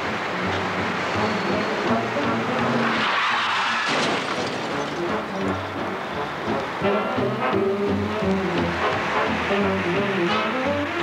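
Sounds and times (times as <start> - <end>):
tyres screeching: 2.7 - 5.2.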